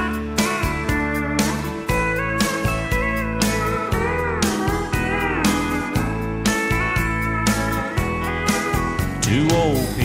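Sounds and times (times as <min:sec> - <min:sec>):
bass: 0:00.0 - 0:10.0
steel guitar lead: 0:00.0 - 0:10.0.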